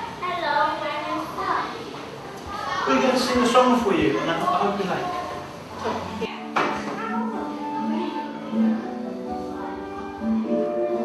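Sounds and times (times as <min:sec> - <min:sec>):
man talking: 0:02.9 - 0:05.1
instrumental children's song music: 0:06.4 - 0:11.0.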